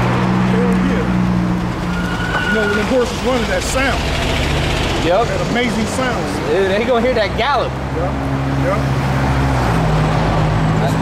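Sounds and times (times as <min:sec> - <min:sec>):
motor vehicle driving past: 0:00.0 - 0:11.0.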